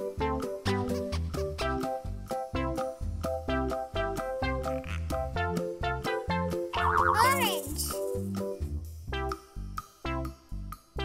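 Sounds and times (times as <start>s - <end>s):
bouncy plucked children's music: 0.0s - 11.0s.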